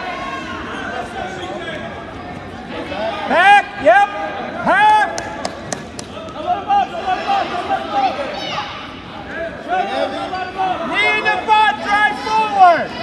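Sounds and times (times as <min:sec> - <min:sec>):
crowd chatter: 0:00.0 - 0:13.0
people shouting encouragement: 0:06.4 - 0:13.0.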